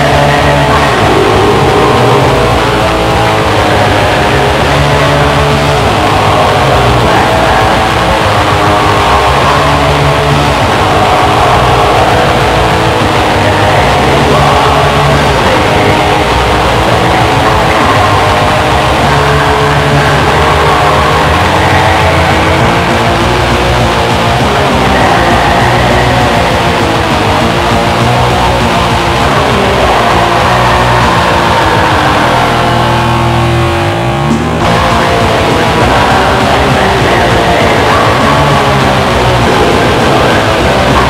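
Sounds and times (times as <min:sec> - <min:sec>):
distorted electric guitars and bass: 0:00.0 - 0:41.0
rapid drumming: 0:00.0 - 0:41.0.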